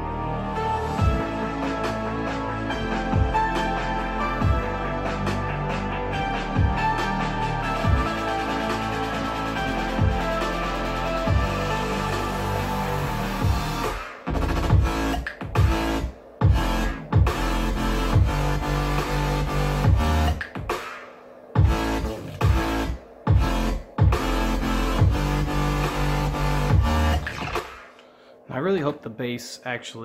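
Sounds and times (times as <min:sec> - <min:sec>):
electronic dance music: 0:00.0 - 0:28.0.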